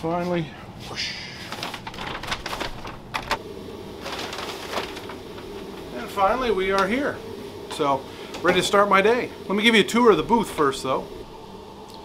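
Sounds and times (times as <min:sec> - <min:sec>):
air-conditioning hum: 0:00.0 - 0:12.0.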